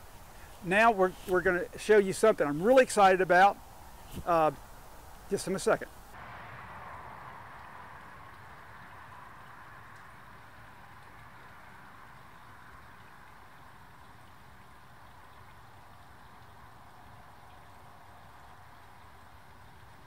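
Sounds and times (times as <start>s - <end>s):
faint water-like hiss: 0.0s - 20.0s.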